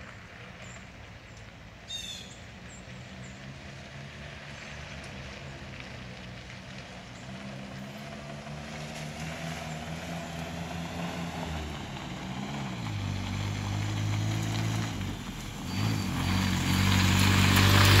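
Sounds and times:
tyres on gravel: 0.0s - 18.0s
vehicle engine approaching: 0.0s - 18.0s.

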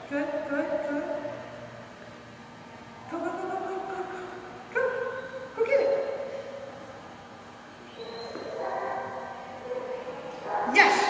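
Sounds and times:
dog whining: 8.0s - 8.8s.

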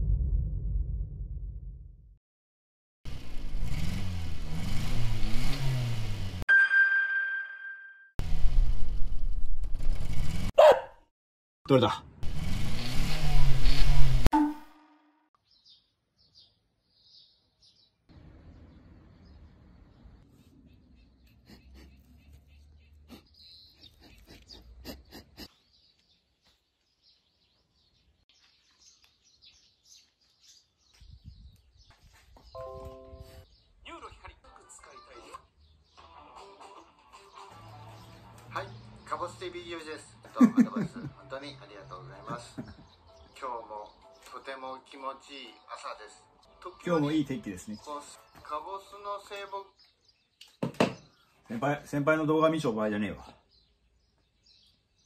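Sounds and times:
truck engine revving: 3.1s - 6.4s, 12.2s - 14.3s
chime-like ringing tone: 6.5s - 8.2s
birds chirping: 15.4s - 55.0s.

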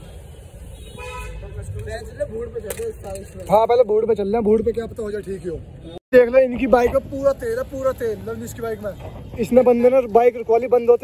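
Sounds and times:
vehicle horn honk: 0.7s - 1.5s.

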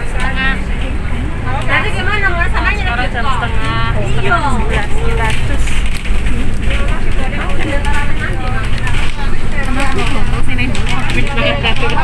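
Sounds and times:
low rumble of moving bus: 0.0s - 12.0s
people talking: 0.0s - 12.0s.

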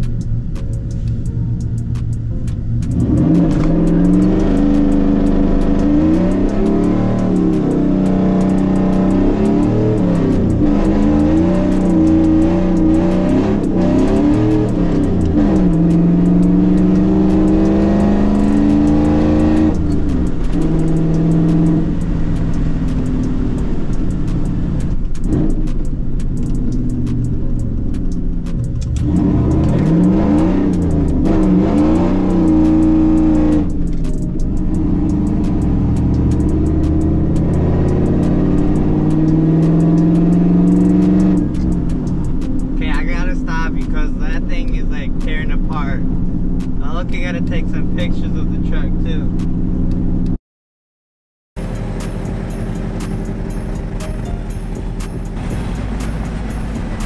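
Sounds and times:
pickup engine accelerating: 0.0s - 50.4s, 51.6s - 57.0s.

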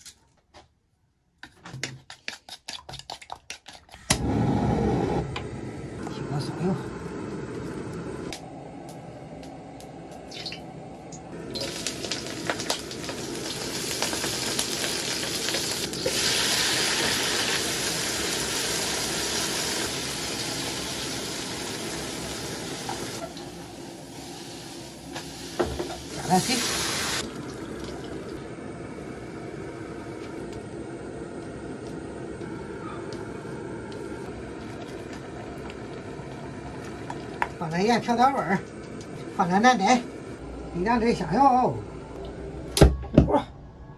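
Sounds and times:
food sizzling in hot oil: 11.5s - 27.7s.

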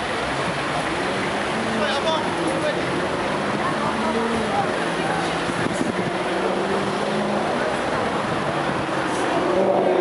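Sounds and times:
car engines and tyres: 0.0s - 10.0s
low engine hums: 0.0s - 10.0s.

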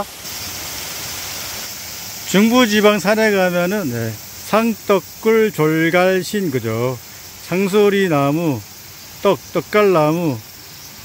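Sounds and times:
forest ambience hiss: 0.0s - 11.0s
higher hiss: 0.0s - 11.0s.

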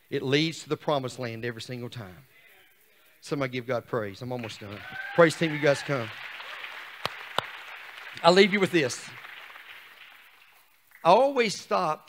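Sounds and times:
congregation applauding: 4.4s - 11.3s.

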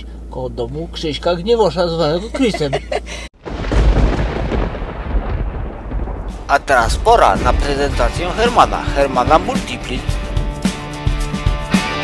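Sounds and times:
wind buffeting microphone: 3.4s - 9.2s.

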